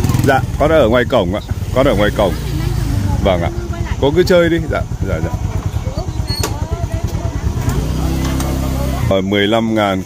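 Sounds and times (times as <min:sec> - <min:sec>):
faint voices: 0:00.0 - 0:10.0
motorcycle engine idling: 0:00.0 - 0:10.0.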